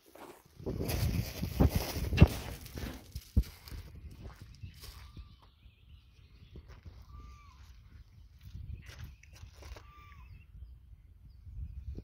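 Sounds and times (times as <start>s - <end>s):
footsteps crunching on gravel: 0.0s - 5.6s, 6.7s - 10.1s.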